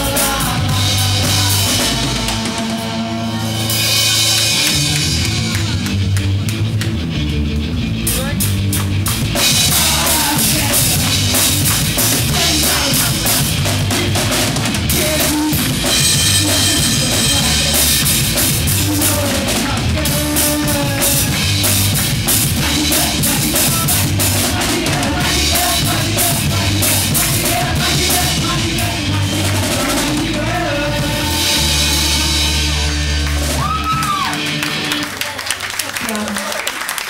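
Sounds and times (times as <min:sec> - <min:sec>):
rock band playing loud: 0:00.0 - 0:36.3.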